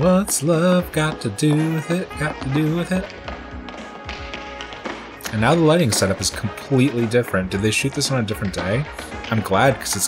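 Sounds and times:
soundtrack music: 0.0 - 10.0
tap shoes on floor: 0.0 - 10.0.

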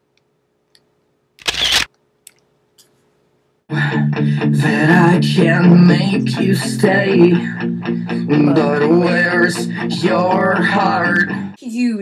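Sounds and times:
camera shutter: 1.4 - 1.9.

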